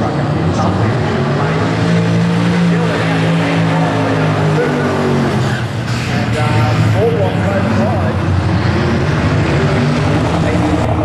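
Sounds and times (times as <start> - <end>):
drag car engine revving: 0.0 - 11.0.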